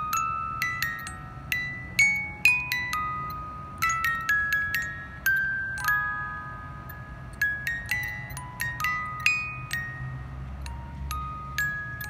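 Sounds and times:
music box playing slow tune: 0.0 - 12.0.

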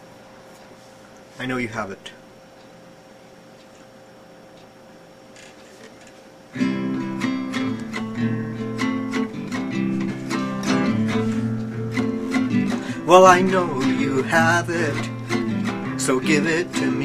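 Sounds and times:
faint hum: 0.0 - 17.0
guitar strumming chords: 6.6 - 17.0.

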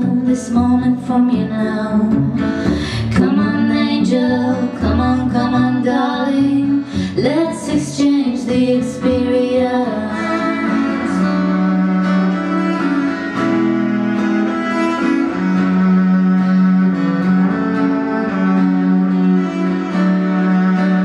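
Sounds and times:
acoustic guitar: 0.0 - 21.0
cello bowed notes: 0.0 - 21.0.

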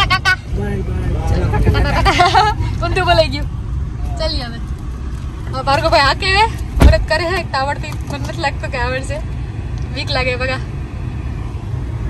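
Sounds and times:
people talking: 0.0 - 4.6, 5.5 - 9.2, 9.9 - 10.6
steady low rumble: 0.0 - 12.0.

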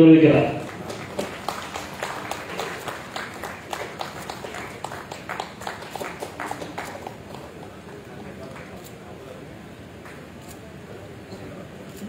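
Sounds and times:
audience applause: 0.5 - 8.8.

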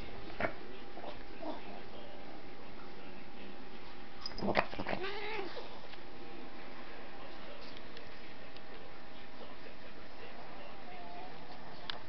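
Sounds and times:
cat meowing: 4.8 - 5.6.

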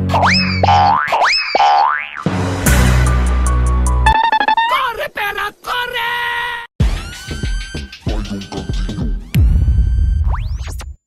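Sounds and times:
cartoon boing sound effect: 0.1 - 2.3
music: 2.2 - 4.2, 6.8 - 11.0.

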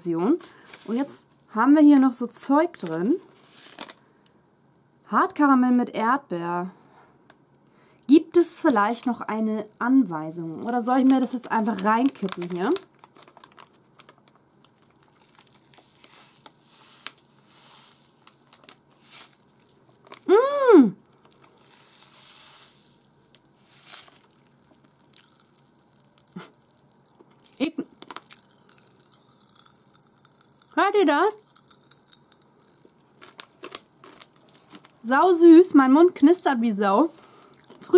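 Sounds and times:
plastic wrapper crinkling and tearing: 0.4 - 1.2, 2.8 - 4.0, 8.5 - 9.2, 10.6 - 20.3, 21.1 - 37.9
popping candy crackling: 10.6 - 20.4, 21.0 - 22.1, 22.8 - 37.9
person humming: 20.3 - 21.0.

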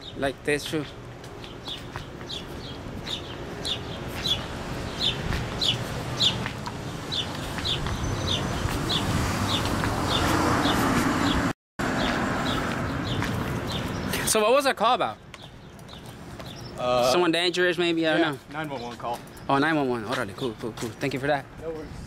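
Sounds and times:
street traffic noise: 0.0 - 22.0
vehicle passing: 2.6 - 14.4.

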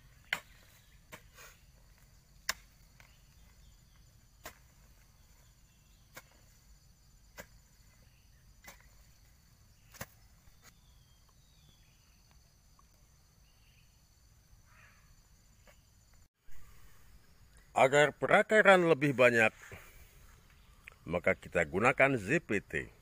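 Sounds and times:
hoe striking soil: 0.0 - 10.9
insects chirring: 0.0 - 23.0.

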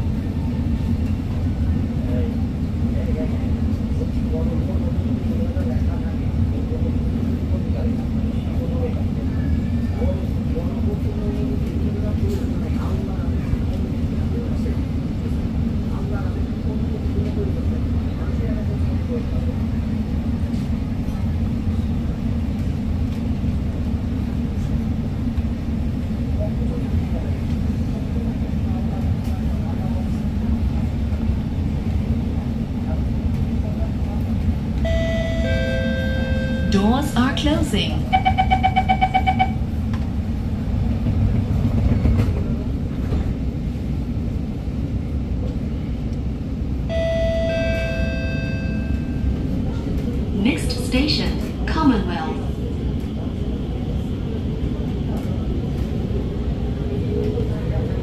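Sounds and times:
low hum inside metro car: 0.0 - 58.0
passenger chatter: 0.0 - 58.0.

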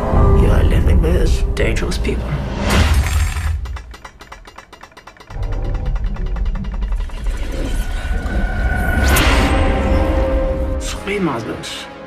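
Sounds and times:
low rumble: 0.0 - 3.9, 5.3 - 10.9
low score music: 0.0 - 12.0
fast mechanical clicking: 2.9 - 7.8.

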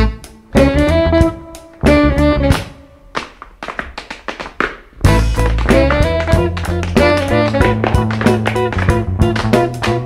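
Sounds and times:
band playing: 0.0 - 2.8, 5.0 - 10.0
tap shoes on wooden board: 2.5 - 10.0.

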